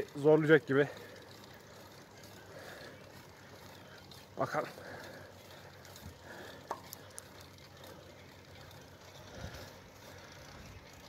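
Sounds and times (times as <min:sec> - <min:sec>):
bicycle riding hiss: 0:00.0 - 0:11.0
light bicycle clicks: 0:00.0 - 0:11.0.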